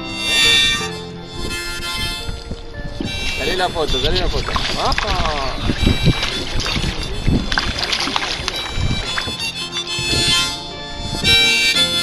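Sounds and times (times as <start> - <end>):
fish splashing in water: 2.4 - 10.3.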